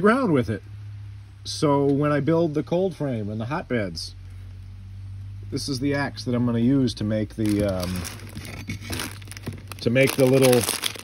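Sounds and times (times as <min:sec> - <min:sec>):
handling rustling: 0:07.3 - 0:11.0.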